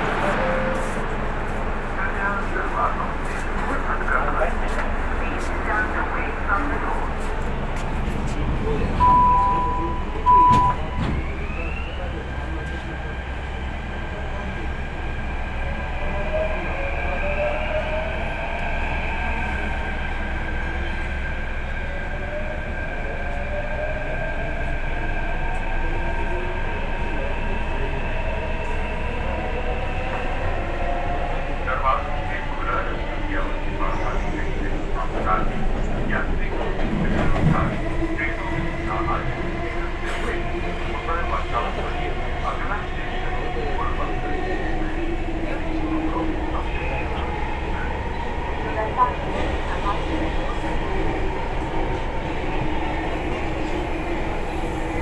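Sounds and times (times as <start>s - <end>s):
train car rumble: 0.0s - 23.3s, 23.9s - 55.0s
door closing warning beeps: 9.0s - 11.2s.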